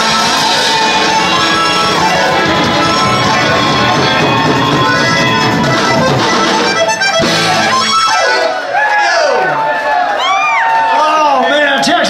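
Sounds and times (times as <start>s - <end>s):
live band playing: 0.0s - 9.6s
audience whooping and cheering: 0.0s - 12.0s.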